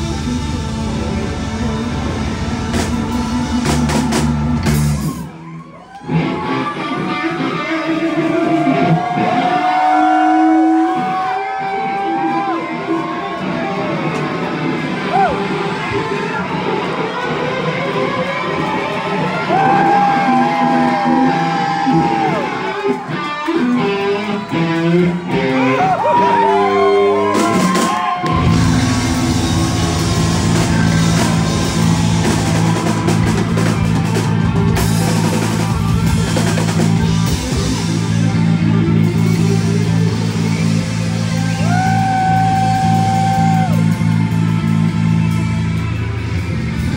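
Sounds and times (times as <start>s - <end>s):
drum kit beat: 0.0s - 5.3s, 27.3s - 46.5s
electric guitar: 0.0s - 46.9s
live band playing: 0.0s - 46.9s
held lead guitar note: 28.3s - 41.0s.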